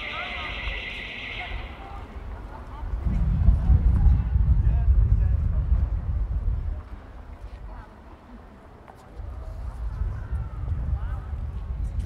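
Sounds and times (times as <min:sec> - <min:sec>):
distant voices: 0:00.0 - 0:03.3.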